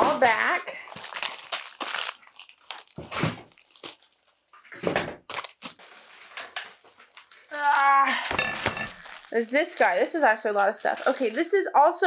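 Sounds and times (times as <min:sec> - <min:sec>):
plastic packaging crinkling: 0:00.0 - 0:04.6, 0:05.2 - 0:11.8.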